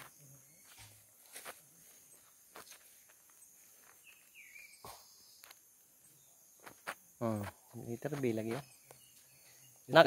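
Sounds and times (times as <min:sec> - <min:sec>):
footsteps on leaf litter: 0:00.0 - 0:04.4.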